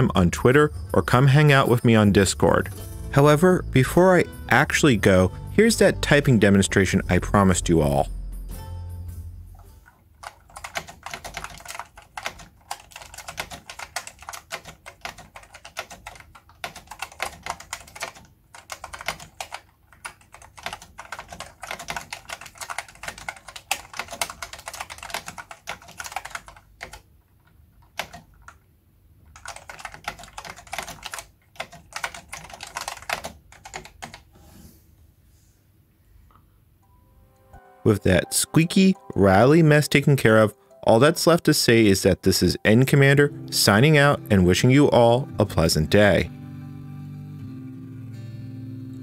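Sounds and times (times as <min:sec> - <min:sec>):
fast typing on rattly keyboard: 0:09.8 - 0:28.6, 0:29.2 - 0:34.3.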